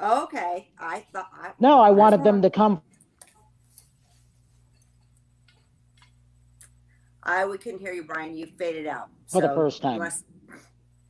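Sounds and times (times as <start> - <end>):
faint low hum: 0.0 - 11.0
faint clicks: 4.7 - 6.8.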